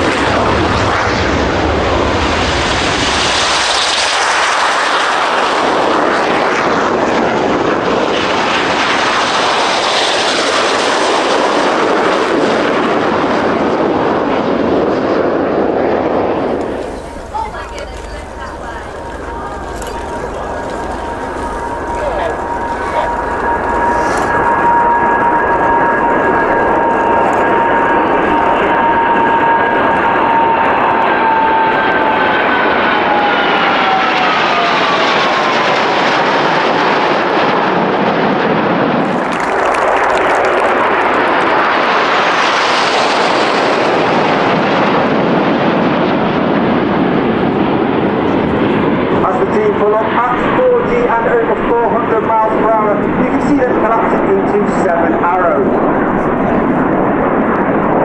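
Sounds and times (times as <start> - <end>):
jet engines roaring overhead: 0.0 - 58.0.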